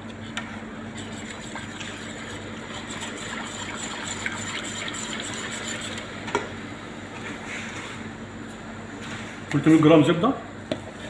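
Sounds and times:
steady low hum: 0.0s - 11.0s
whisk swishing liquid: 0.9s - 6.2s.

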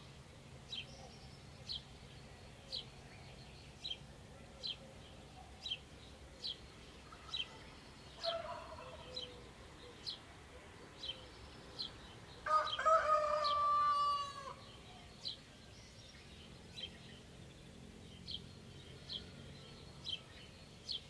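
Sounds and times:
rooster crowing: 8.2s - 9.1s, 12.4s - 14.6s.

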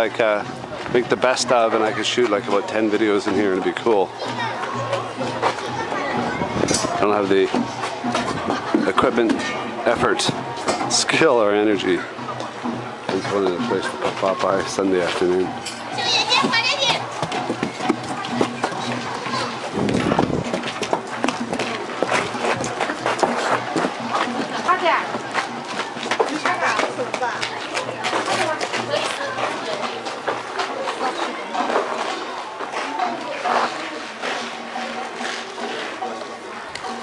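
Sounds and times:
crowd chatter: 0.0s - 37.0s
indistinct background voices: 0.0s - 37.0s
outdoor hubbub: 0.0s - 37.0s.

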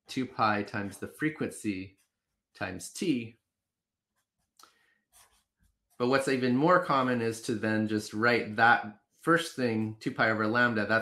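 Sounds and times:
marker scratching on paper: 0.6s - 7.2s.

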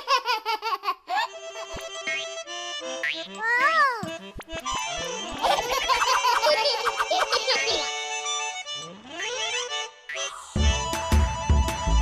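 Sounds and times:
playful cartoon music: 0.0s - 12.0s.

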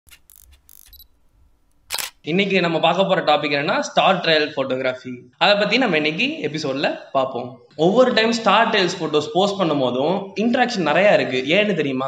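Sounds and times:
camera shutter click: 1.7s - 2.2s.

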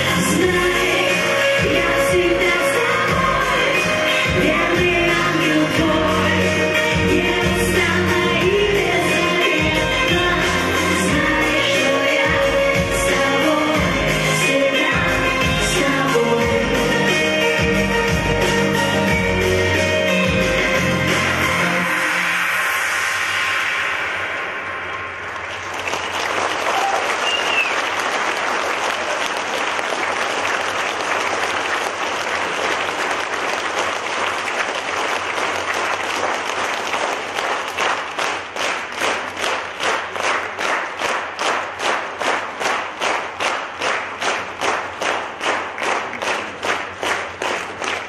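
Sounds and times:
song ending: 0.0s - 25.9s
audience applause: 25.3s - 48.0s
clapping in unison: 25.3s - 48.0s.

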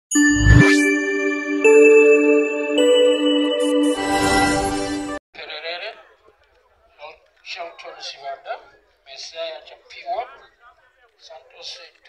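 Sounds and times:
ringing chime-like tones: 0.1s - 5.2s.

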